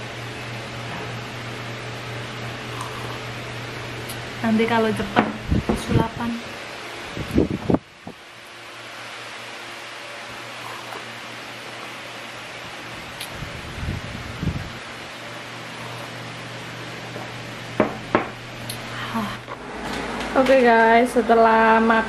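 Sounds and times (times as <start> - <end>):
mechanical hum: 0.0 - 22.0
person gulping a drink: 2.7 - 3.3.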